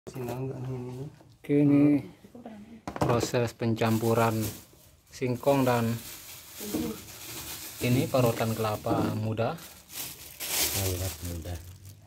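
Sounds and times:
plastic bag crinkling: 3.8s - 12.0s
person speaking: 7.8s - 9.7s, 10.6s - 11.8s.

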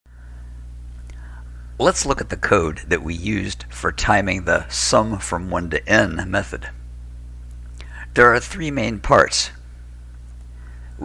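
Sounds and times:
faint high whine: 0.1s - 11.0s
low electrical hum: 0.1s - 11.0s
man speaking: 1.8s - 6.8s, 8.0s - 9.6s.

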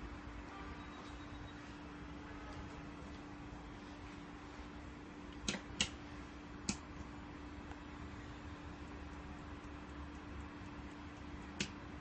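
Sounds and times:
faint steady hum: 0.0s - 12.0s
sharp switch click: 5.3s - 6.0s, 11.6s - 11.8s.

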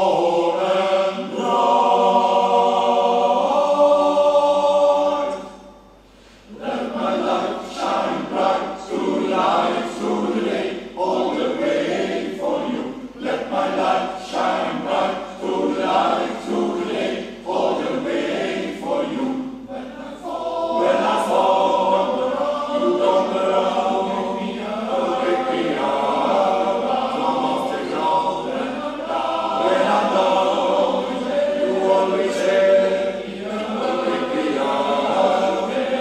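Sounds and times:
men's choir singing: 0.0s - 5.8s, 6.4s - 36.0s.

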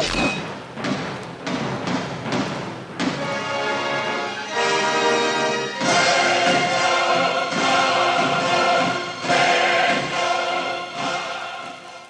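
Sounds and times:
orchestral trailer music: 0.0s - 12.0s
choir singing held chords: 4.5s - 12.0s.

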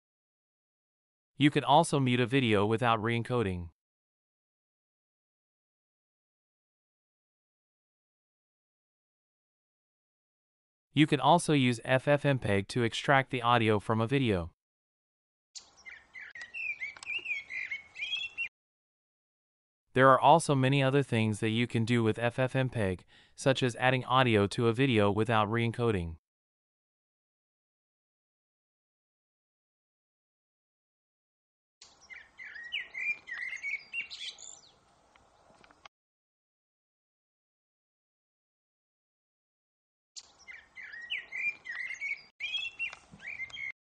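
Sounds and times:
birds chirping: 15.6s - 18.5s, 31.9s - 35.9s, 40.2s - 43.8s.

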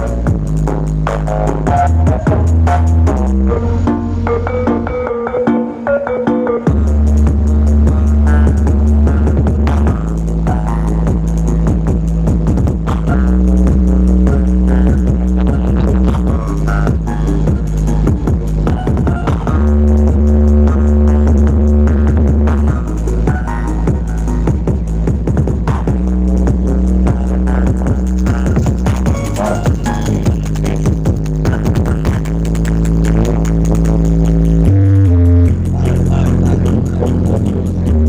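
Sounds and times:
loud electronic dance music: 0.0s - 38.0s.

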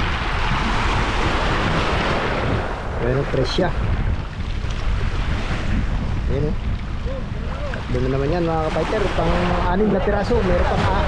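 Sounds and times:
sea waves washing on shore: 0.0s - 11.0s
wind buffeting microphone: 0.0s - 11.0s.

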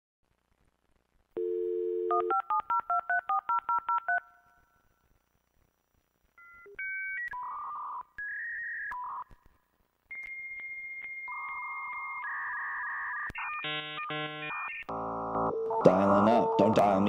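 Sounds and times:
telephone dial tone: 1.4s - 4.2s.

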